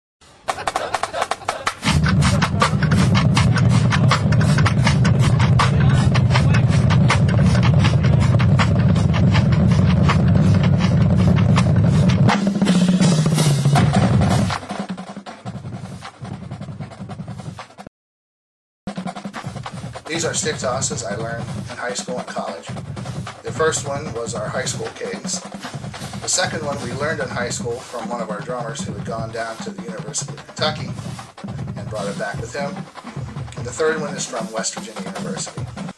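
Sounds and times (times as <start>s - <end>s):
rapid snare drum strokes: 0.2s - 17.9s, 18.9s - 35.9s
heavy bass drum: 0.6s - 17.9s, 18.9s - 35.9s.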